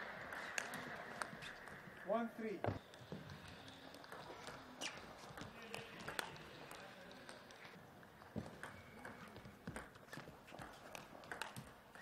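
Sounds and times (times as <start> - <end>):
table tennis ball clicking: 10.9 - 12.0.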